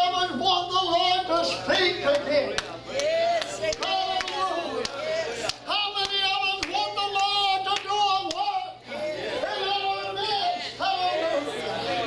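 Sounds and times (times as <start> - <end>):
hands clapping a steady beat: 2.0 - 8.6.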